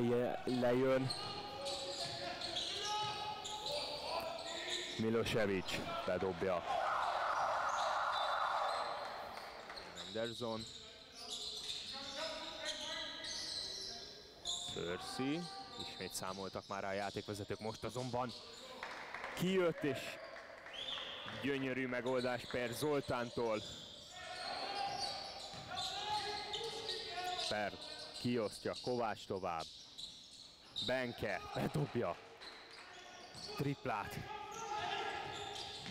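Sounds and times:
sneakers squeaking on wooden floor: 0.4 - 6.4, 7.7 - 18.8, 22.1 - 35.9.

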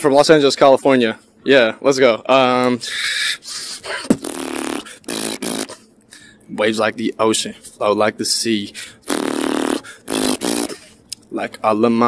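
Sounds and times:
beatboxing: 3.4 - 5.8, 9.0 - 11.0.

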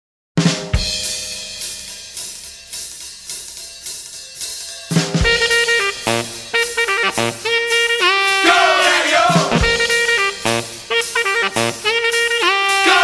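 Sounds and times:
drum kit beat: 0.4 - 13.0
loud cymbal crash: 0.4 - 13.0
horns: 4.9 - 13.0.

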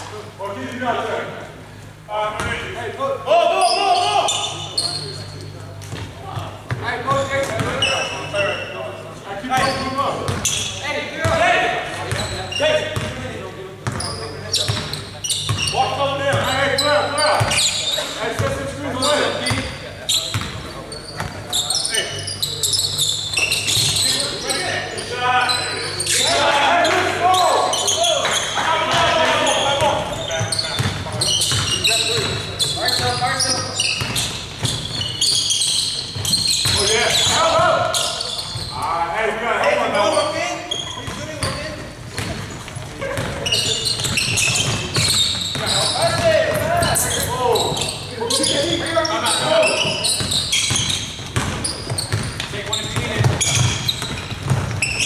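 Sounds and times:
players calling out: 0.3 - 55.0.

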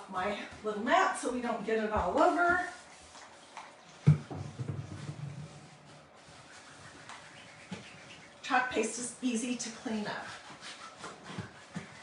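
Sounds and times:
wipe rubbing on a mat: 2.1 - 12.0.

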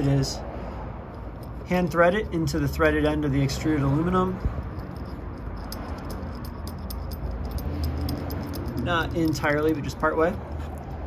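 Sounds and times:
metallic ticks of screw turning: 1.1 - 11.0.

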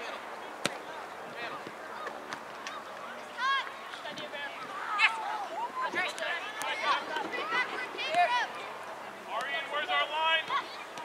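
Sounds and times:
young players shouting and calling: 0.0 - 11.0.

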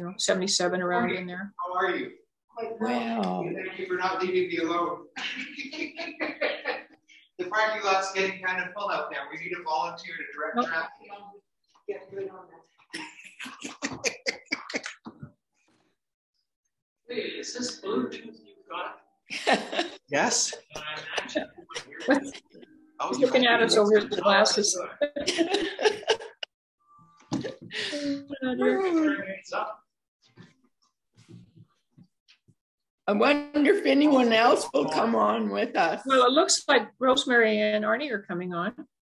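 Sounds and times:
person laughing: 5.2 - 6.9, 13.0 - 15.1, 19.3 - 22.6, 23.2 - 26.5.

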